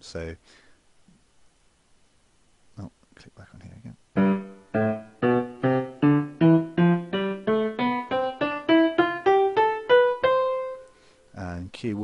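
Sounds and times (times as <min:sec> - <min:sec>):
synthesized piano scale: 0:04.2 - 0:10.9.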